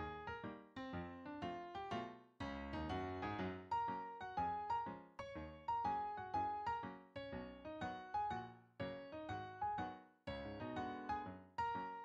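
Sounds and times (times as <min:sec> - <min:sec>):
solo piano music: 0:00.0 - 0:12.0.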